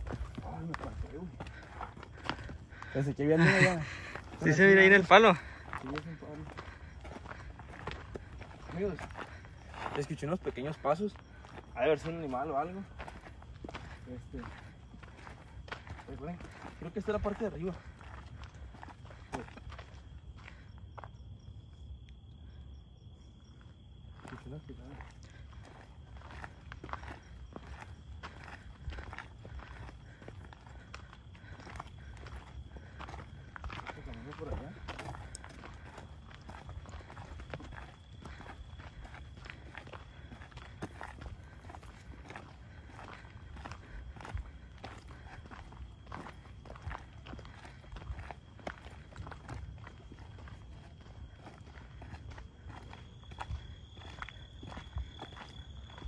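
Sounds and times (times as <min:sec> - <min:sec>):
footsteps on dirt trail: 0:00.0 - 0:56.0.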